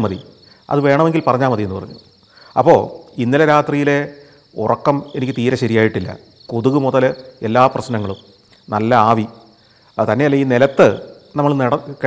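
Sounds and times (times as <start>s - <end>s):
man talking: 0.0s - 2.0s, 2.6s - 9.4s, 10.0s - 12.0s
crickets trilling: 0.0s - 12.0s.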